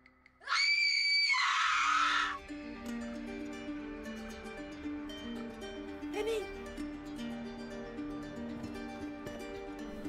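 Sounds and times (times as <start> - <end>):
loud shrill scream: 0.4 - 2.4
soft plucked music: 2.4 - 10.0.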